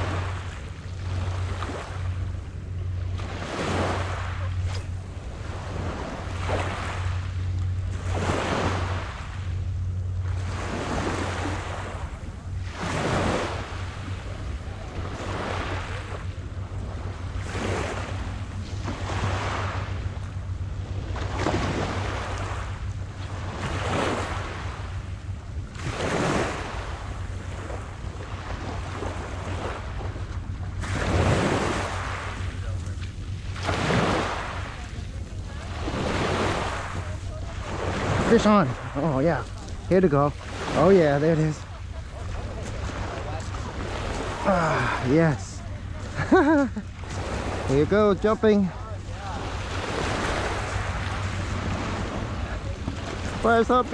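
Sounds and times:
low hum: 0.0 - 53.9
wind rumbling on microphone: 0.0 - 53.9
small waves on gravel shore: 3.1 - 9.6, 10.3 - 14.2, 30.8 - 53.9.

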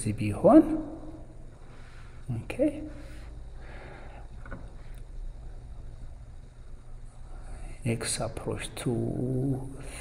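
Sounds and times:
man talking: 0.0 - 1.1, 2.3 - 3.0, 7.5 - 10.0.

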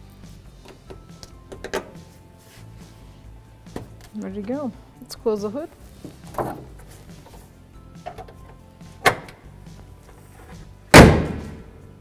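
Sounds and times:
car hood slamming shut: 10.9 - 11.7.

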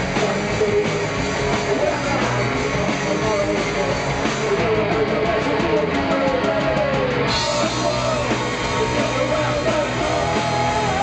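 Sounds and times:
live punk rock band: 0.0 - 11.0.

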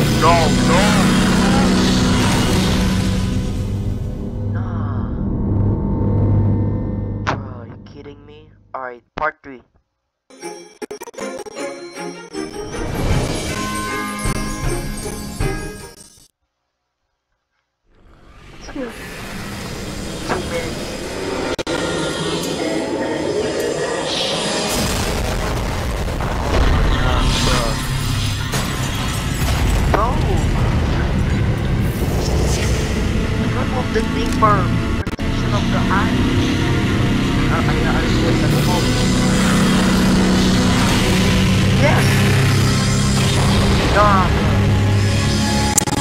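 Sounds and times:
deep rumbling roar: 0.0 - 7.3, 29.4 - 45.1.

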